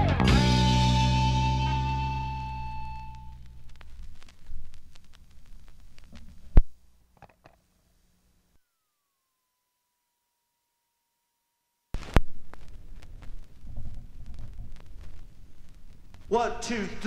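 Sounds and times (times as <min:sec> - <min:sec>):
rock guitar chord ringing: 0:00.0 - 0:03.7.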